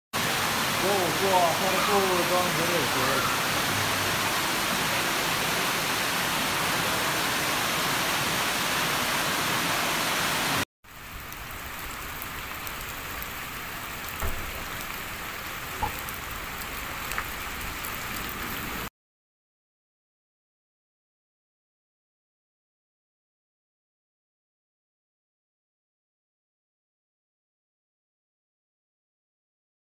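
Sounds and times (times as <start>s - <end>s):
floodwater rushing down stairs: 0.2s - 18.9s
rain on flooded street: 0.2s - 18.9s.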